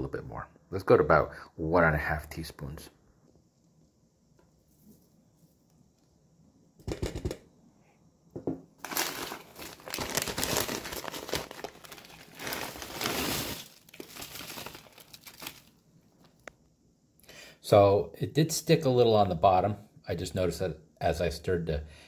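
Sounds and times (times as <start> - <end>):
plastic bag crinkling: 8.8 - 16.4.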